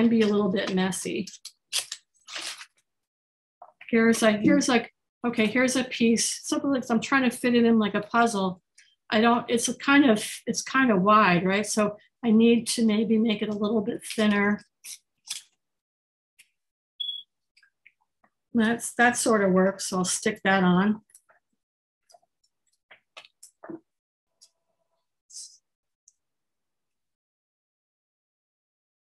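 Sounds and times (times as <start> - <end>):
paper crunching: 1.7 - 2.8
high-pitched electronic beep: 17.0 - 17.2.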